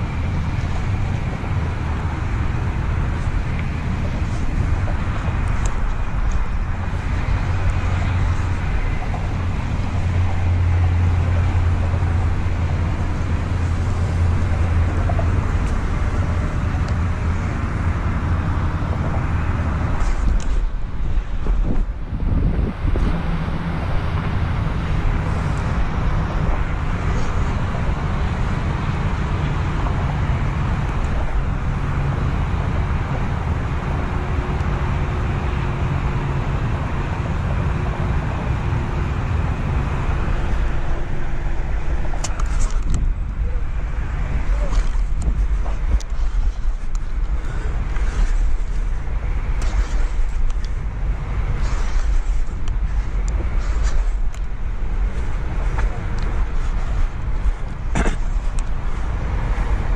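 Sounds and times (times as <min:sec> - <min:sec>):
low outdoor rumble: 0:00.0 - 0:59.9
traffic noise: 0:00.0 - 0:59.9
wind on microphone: 0:00.0 - 0:59.9.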